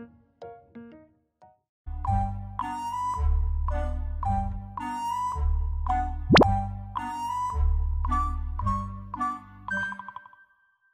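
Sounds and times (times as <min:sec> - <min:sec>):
background music: 0:00.0 - 0:10.5
pop sound effect: 0:06.3 - 0:06.5.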